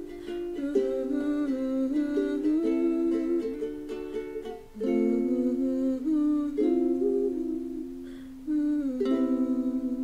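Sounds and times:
woman humming: 0.0s - 3.7s, 4.8s - 10.0s
acoustic ukulele strumming: 0.0s - 10.0s.

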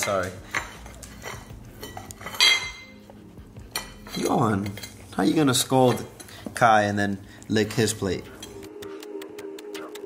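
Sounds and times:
plates clinking on tile floor: 0.0s - 3.0s.

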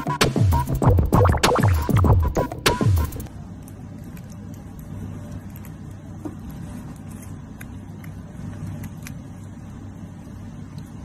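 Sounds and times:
cat chewing lettuce: 3.3s - 11.0s.

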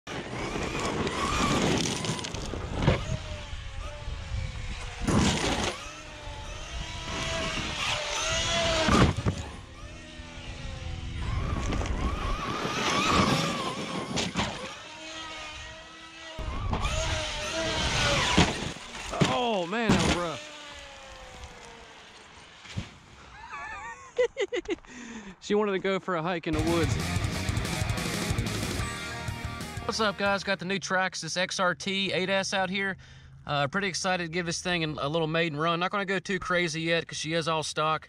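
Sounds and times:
electric motor whining: 0.1s - 23.3s
tyres tearing over gravel: 0.2s - 3.2s, 5.0s - 9.6s, 11.3s - 23.1s
hard thuds from landings: 7.4s - 9.6s, 16.4s - 20.7s.

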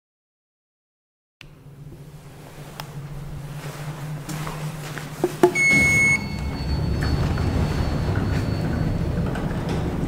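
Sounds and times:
elevator clicks: 5.2s - 10.0s
electronic arrival beep: 5.6s - 9.2s
sliding doors opening: 5.6s - 10.0s.

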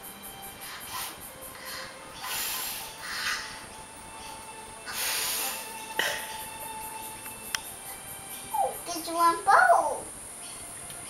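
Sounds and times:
child blowing through bubble wand: 0.7s - 3.6s, 4.9s - 6.3s.

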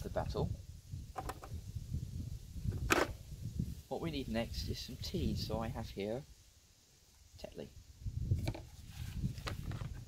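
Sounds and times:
lid latching shut click: 2.8s - 3.2s.

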